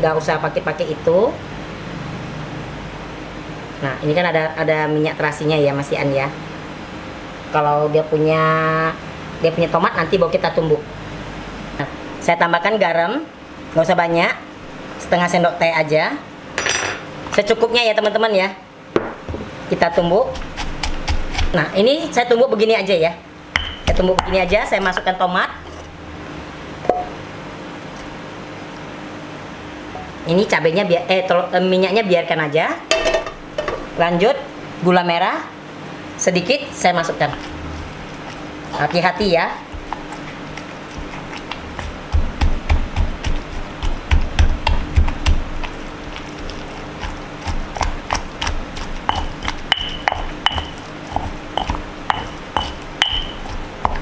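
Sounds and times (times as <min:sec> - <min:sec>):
faint hum: 0:00.0 - 0:54.0
stone pestle pounding in mortar: 0:19.0 - 0:21.6, 0:23.6 - 0:25.2, 0:38.8 - 0:54.0.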